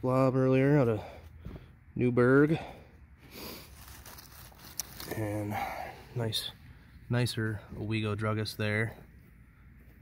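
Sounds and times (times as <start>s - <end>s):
bottles rustling on dry leaves: 3.3s - 5.8s.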